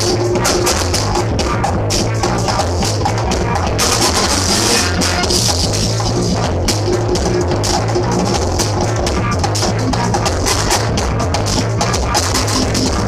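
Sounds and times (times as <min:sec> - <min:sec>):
breakbeat music: 0:00.0 - 0:13.0.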